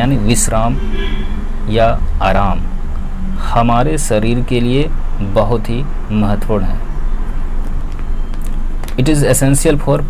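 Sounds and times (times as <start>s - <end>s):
low background rumble: 0.0s - 6.2s.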